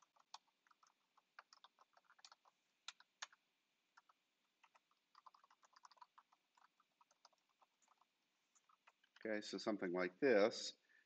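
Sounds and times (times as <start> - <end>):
computer keyboard keystrokes: 0.0 - 3.4, 4.0 - 8.0.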